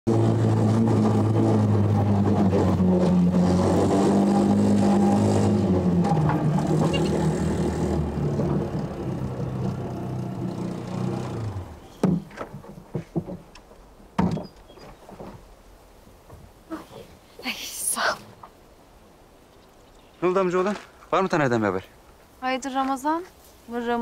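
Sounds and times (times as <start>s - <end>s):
motorcycle engine running: 4.3s - 11.9s.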